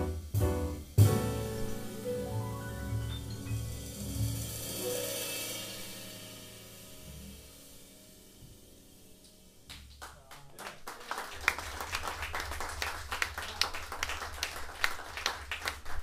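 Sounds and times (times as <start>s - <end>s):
jazz piano trio chord: 0.0s - 9.7s
audience clapping: 9.7s - 16.0s.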